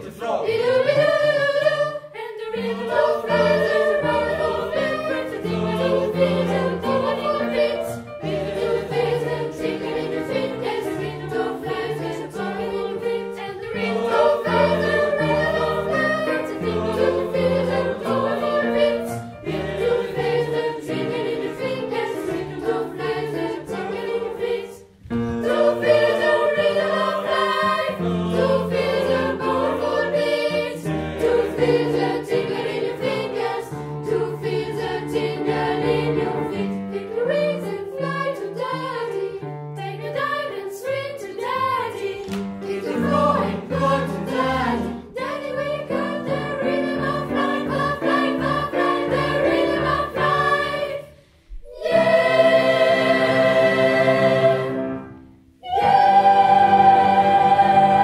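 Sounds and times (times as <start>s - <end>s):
children's choir singing: 0.0s - 58.0s.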